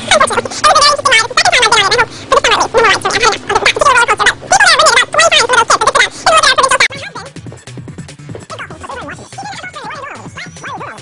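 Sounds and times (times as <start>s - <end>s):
sped-up chattering speech: 0.0s - 11.0s
steady music bed: 7.0s - 11.0s.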